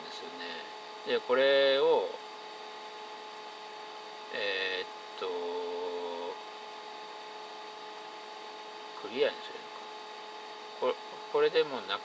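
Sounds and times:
electrical hum: 0.0 - 12.0.

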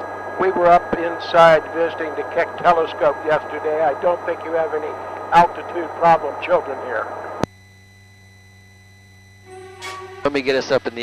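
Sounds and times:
faint electrical hum with tones: 0.0 - 11.0.

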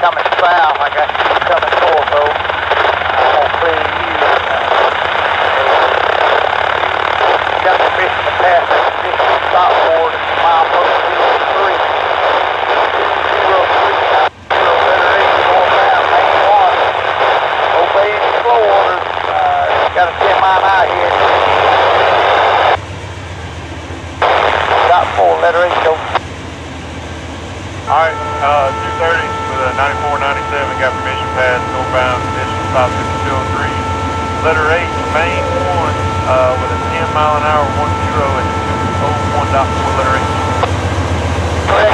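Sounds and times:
scanner radio chatter: 0.0 - 22.8, 24.2 - 26.2, 27.9 - 40.8, 41.7 - 41.9
locomotive engine rumble: 0.0 - 41.9
locomotive air horn: 27.8 - 40.8.

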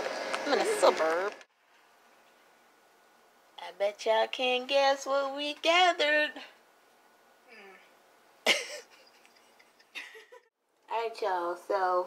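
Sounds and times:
person coughing: 8.5 - 8.9.

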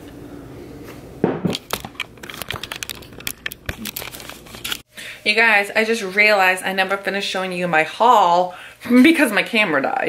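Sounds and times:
packaging crinkling and rustling: 1.6 - 4.8.

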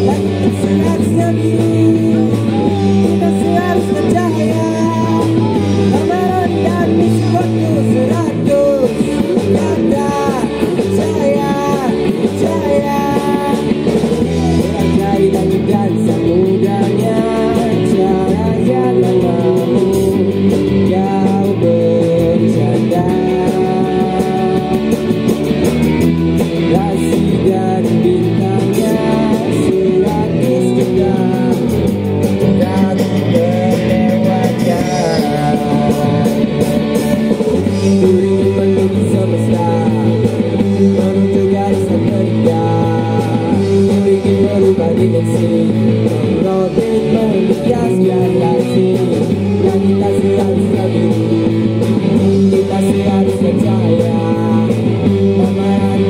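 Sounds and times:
person singing: 0.0 - 25.3, 26.4 - 56.0
drum kit with cymbals: 0.0 - 56.0
electric guitars: 0.0 - 56.0.

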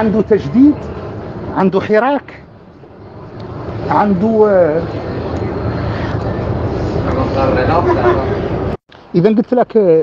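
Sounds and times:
low rumbling noise: 0.0 - 9.2.

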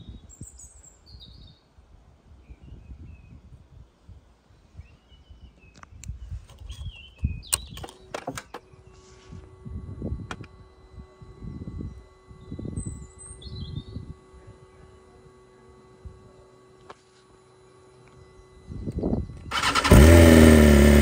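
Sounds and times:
birds chirping: 2.4 - 9.2, 11.4 - 15.1.

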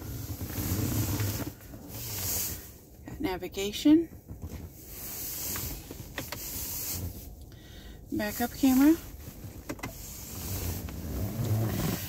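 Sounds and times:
car cabin hiss: 0.2 - 2.8, 4.8 - 7.3, 8.2 - 12.0.

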